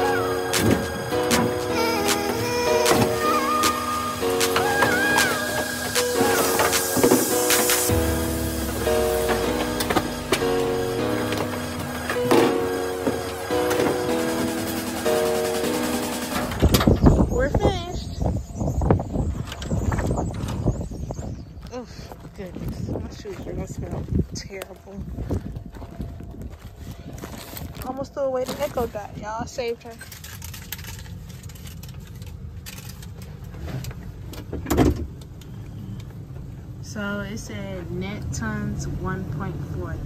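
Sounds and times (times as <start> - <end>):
voice calling: 0.0 - 7.9
background music: 0.0 - 17.4
rough outdoor noise: 0.0 - 40.0
vehicle engine and road noise: 0.0 - 40.0.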